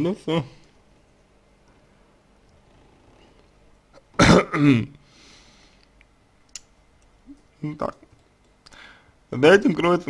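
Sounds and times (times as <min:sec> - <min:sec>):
man coughing: 0:04.0 - 0:04.9.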